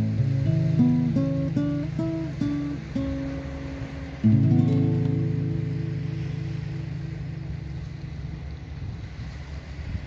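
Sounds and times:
acoustic guitar chord ringing: 0.0 - 9.0
wind rumble on microphone: 0.0 - 10.0.

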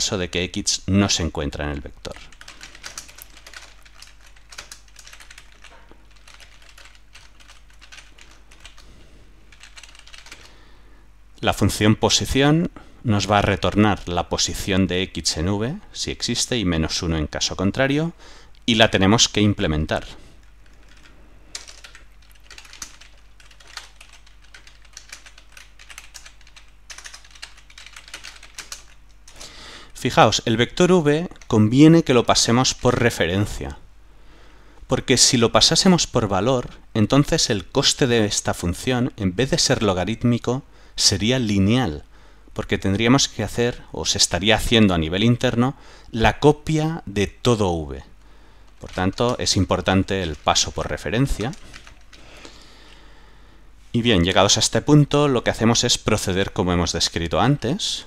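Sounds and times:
faint low hum: 0.0 - 58.0
keyboard typing: 2.1 - 8.9, 9.5 - 10.5, 20.4 - 29.5, 48.6 - 52.4.

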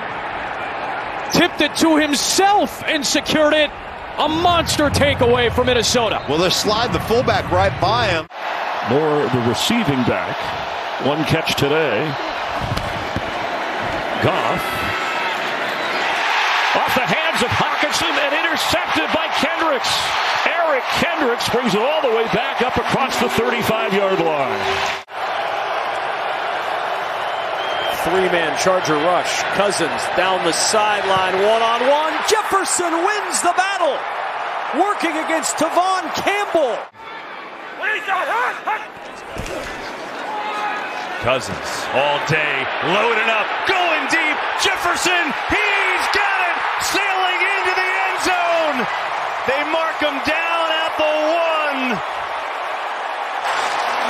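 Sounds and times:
stadium crowd noise: 0.0 - 54.0.

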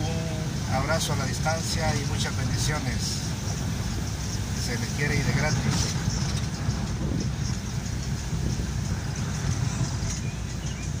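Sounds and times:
car road and engine rumble: 0.0 - 11.0
tyre hiss on wet road: 0.1 - 10.6.

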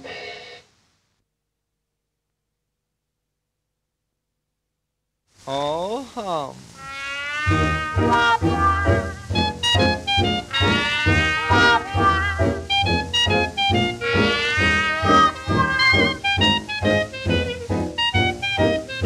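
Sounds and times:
jazz dance band playing: 6.8 - 19.0.

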